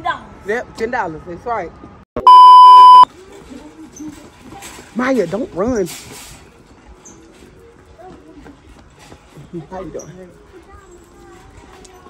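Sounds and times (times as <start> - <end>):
electronic beep: 2.2 - 3.1.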